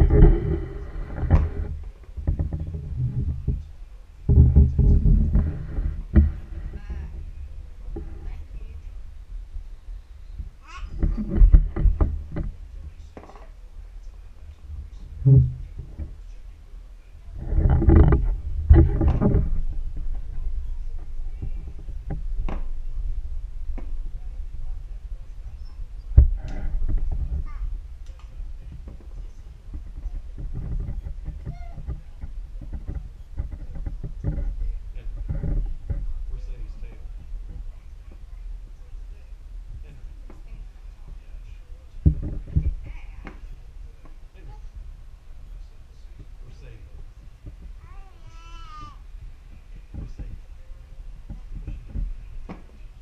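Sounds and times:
low rumble: 0.0 - 47.8
toddler crying: 10.6 - 11.0, 47.8 - 49.0.

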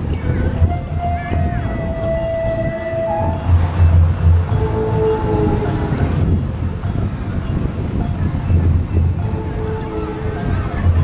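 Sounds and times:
music playing: 0.0 - 11.0
wind buffeting microphone: 0.0 - 11.0.

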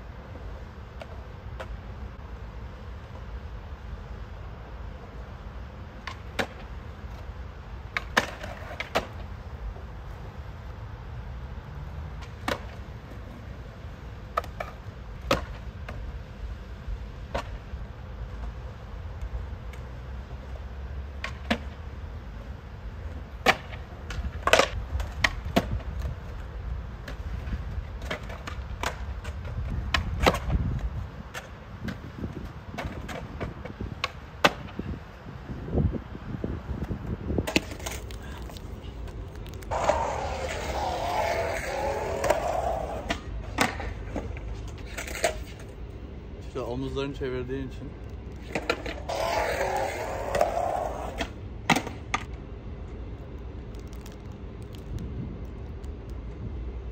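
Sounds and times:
skateboard wheels rumbling: 0.0 - 47.0, 47.9 - 56.9
skateboard clacking on ground: 6.0 - 9.8, 14.2 - 16.0, 23.4 - 34.8, 36.8 - 45.8, 48.2 - 52.4.

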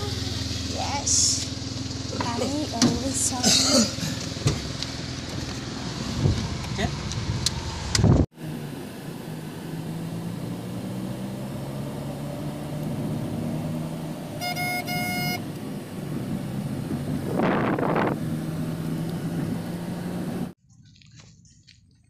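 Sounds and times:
car engine and road noise: 0.0 - 22.0
car horn toots: 14.4 - 15.4.

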